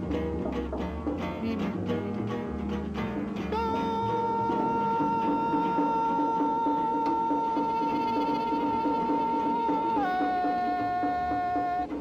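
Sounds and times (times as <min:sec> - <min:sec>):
guitar strummed: 0:00.0 - 0:12.0
long held high note: 0:03.5 - 0:12.0.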